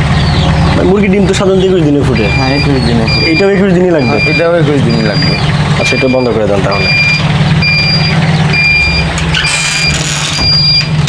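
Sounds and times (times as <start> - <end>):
fan motor hum: 0.0 - 11.0
short high beeps: 2.2 - 10.9.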